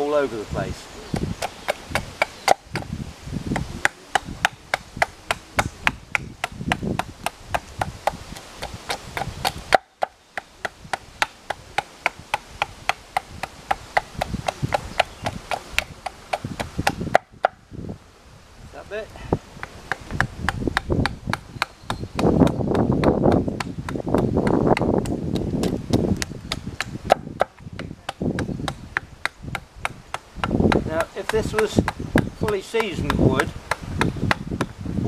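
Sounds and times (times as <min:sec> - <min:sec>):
axe chopping wood: 0:01.1 - 0:02.9, 0:03.5 - 0:17.6, 0:19.6 - 0:34.7.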